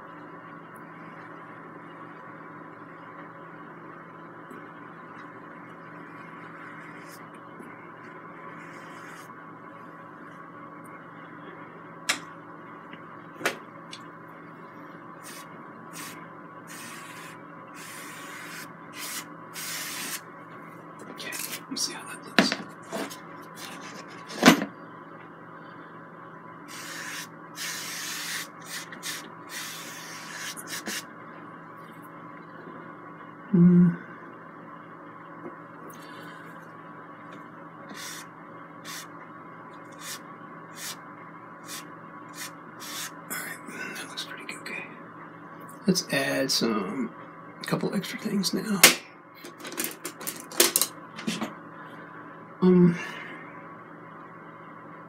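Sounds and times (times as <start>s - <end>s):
room hum: 0.0s - 55.0s
paintbrush scrubbing canvas: 8.5s - 9.3s, 15.2s - 20.2s, 26.7s - 31.0s, 37.9s - 39.1s, 40.0s - 40.2s, 40.8s - 41.0s, 42.4s - 43.1s.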